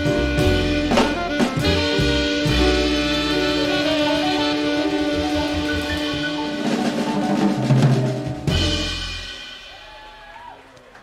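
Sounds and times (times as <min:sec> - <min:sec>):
held horn notes: 0:00.0 - 0:07.1
live jazz band: 0:00.0 - 0:10.2
drum fill: 0:00.0 - 0:10.6.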